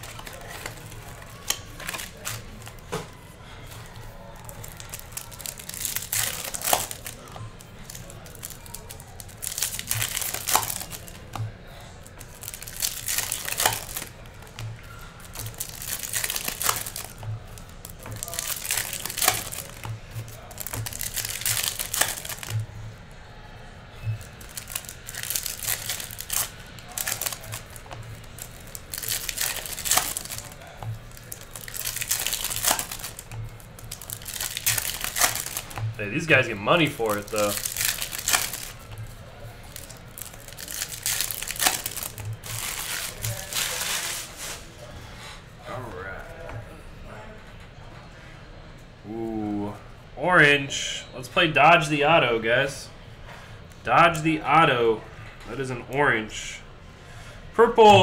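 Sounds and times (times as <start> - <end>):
foil packs tearing and crinkling: 0.0 - 3.0, 4.2 - 22.6, 24.1 - 44.6.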